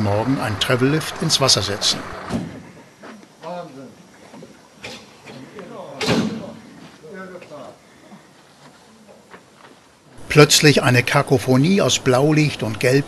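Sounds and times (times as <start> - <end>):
short loud bang: 6.0 - 6.6.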